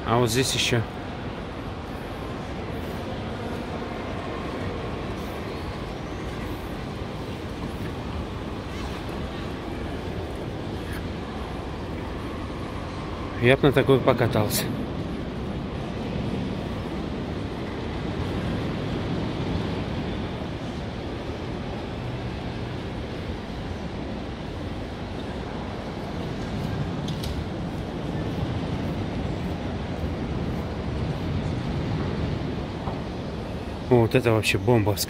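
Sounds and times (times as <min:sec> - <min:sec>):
terminal hall hum and murmur: 0:00.0 - 0:35.0.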